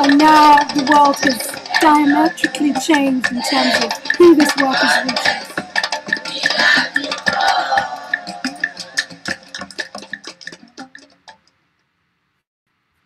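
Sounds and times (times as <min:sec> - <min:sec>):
children's voices: 0:00.0 - 0:09.0
quick clicking percussion: 0:00.0 - 0:11.5.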